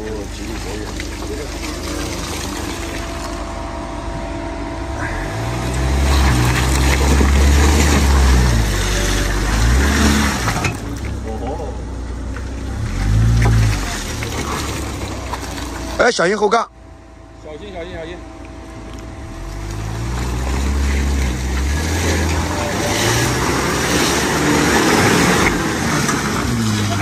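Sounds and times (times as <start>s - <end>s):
tyres in mud: 0.0s - 16.7s, 18.0s - 27.0s
truck engine revving: 0.0s - 27.0s.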